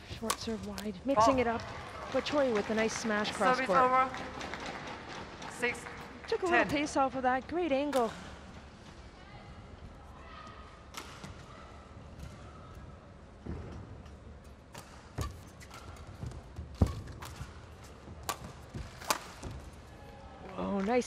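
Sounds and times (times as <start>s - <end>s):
rackets striking shuttlecock: 14.7s - 17.6s, 18.2s - 19.6s.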